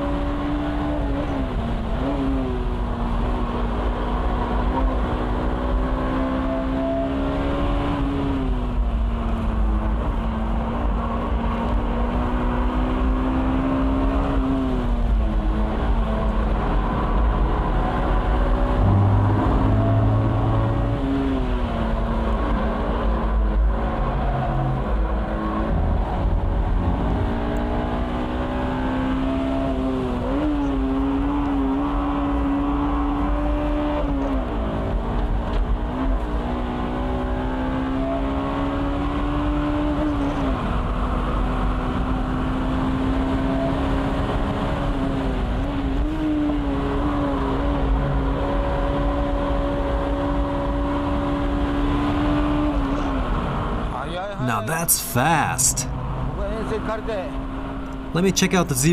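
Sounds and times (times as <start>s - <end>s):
car engine at high revs: 0.0s - 54.7s, 55.3s - 58.7s
wind and road noise: 0.0s - 58.2s.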